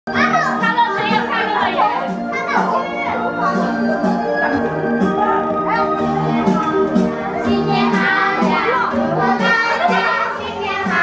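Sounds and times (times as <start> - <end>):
young children talking and calling: 0.1 - 11.0
music with sustained notes: 0.2 - 11.0.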